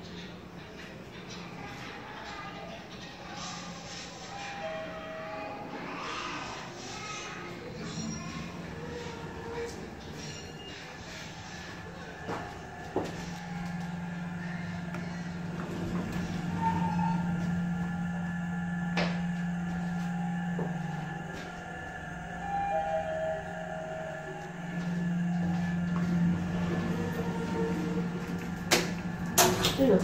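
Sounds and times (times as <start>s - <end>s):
elevator car humming: 0.0s - 30.0s.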